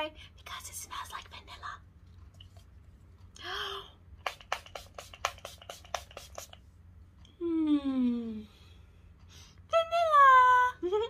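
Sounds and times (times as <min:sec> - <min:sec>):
spray bottle spritzing mist: 0:04.2 - 0:06.6.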